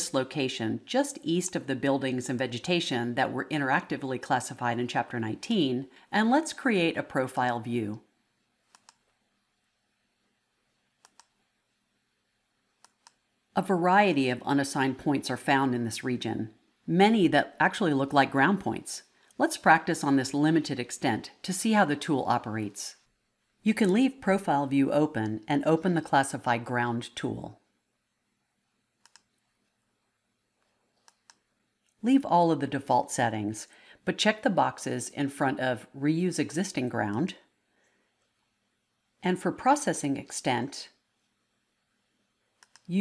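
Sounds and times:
computer mouse clicks: 8.7s - 9.1s, 11.0s - 11.4s, 12.8s - 13.3s, 29.0s - 29.4s, 30.6s - 32.0s, 42.6s - 42.9s.

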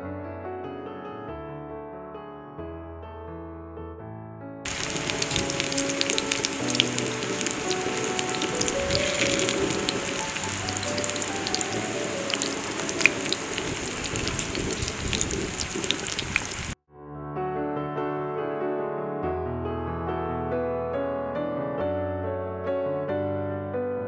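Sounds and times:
piano music: 0.0s - 24.0s
batter slices frying in hot oil: 4.7s - 16.8s.

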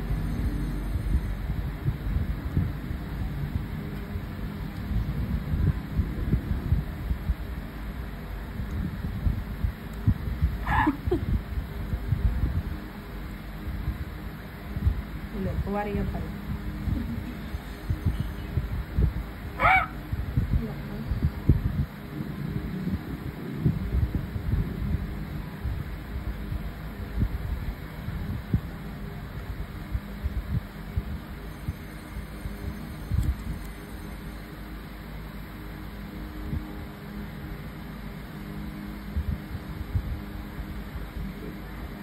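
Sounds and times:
low rumble with soft bumps: 0.0s - 31.4s
steady low hum: 0.0s - 42.0s
faint high tone: 17.2s - 18.8s, 31.4s - 34.8s.

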